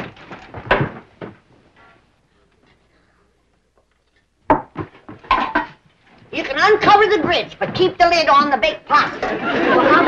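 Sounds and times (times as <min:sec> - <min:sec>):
dishes and pots clattering: 0:04.8 - 0:05.8.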